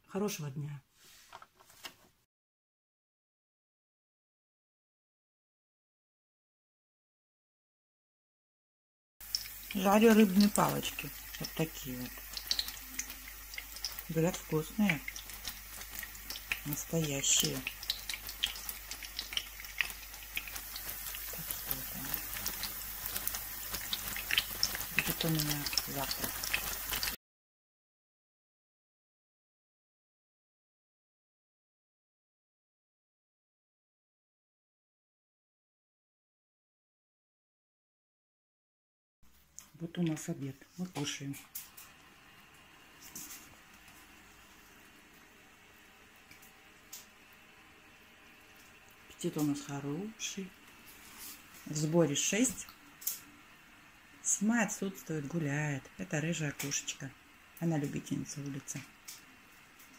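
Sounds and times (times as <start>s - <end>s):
food sizzling in hot oil: 9.2s - 27.2s, 39.3s - 59.9s.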